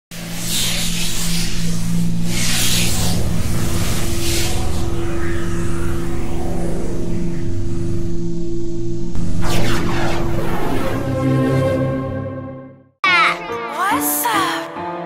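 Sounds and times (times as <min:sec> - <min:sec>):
low held drone: 0:00.2 - 0:12.8
rushing whooshes: 0:00.6 - 0:12.4.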